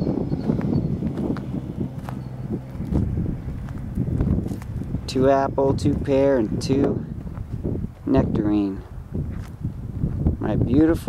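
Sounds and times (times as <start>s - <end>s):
low steady rumble: 0.0s - 11.0s
footsteps on soil and mulch: 0.4s - 10.3s.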